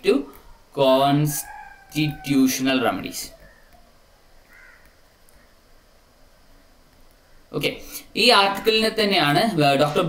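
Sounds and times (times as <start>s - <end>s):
faint bird call: 1.4s - 5.6s.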